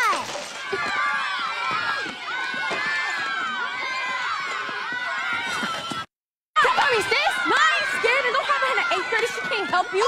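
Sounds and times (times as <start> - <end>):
girls shrieking and yelling: 0.0 - 10.0.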